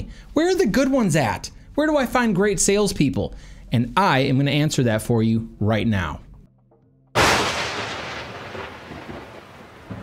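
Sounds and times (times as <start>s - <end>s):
loud boom: 7.2s - 10.0s.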